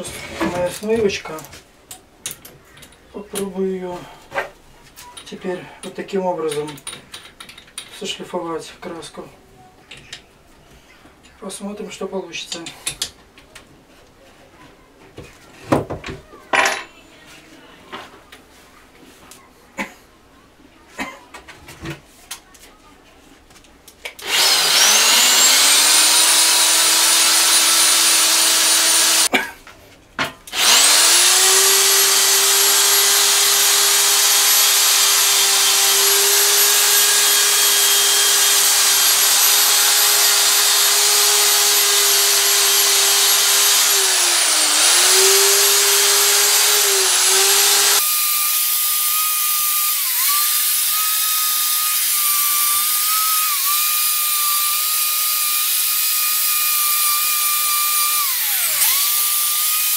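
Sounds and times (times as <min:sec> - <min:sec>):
electric drill wire brush scrubbing: 0:24.2 - 0:29.3, 0:30.5 - 0:59.9.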